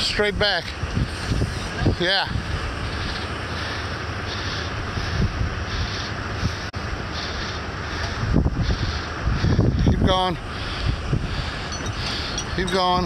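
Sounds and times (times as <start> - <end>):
vehicle engine running: 0.7 - 13.0.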